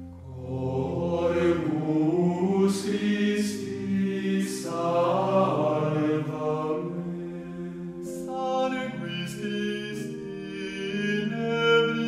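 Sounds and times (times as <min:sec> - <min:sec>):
slow sung chant: 0:00.0 - 0:12.0.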